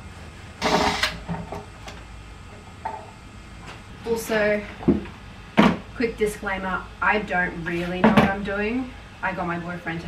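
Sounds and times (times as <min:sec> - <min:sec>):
cordless drill running: 0:00.6 - 0:01.2.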